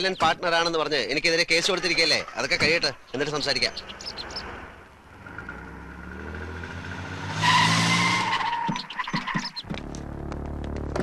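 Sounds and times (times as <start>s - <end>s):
car engine revving: 3.8s - 11.0s
tyre squeal: 7.4s - 9.6s.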